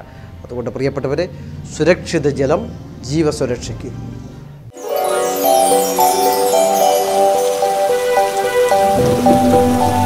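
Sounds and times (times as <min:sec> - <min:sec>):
simple background melody: 0:04.8 - 0:10.0
steady rain: 0:04.9 - 0:10.0.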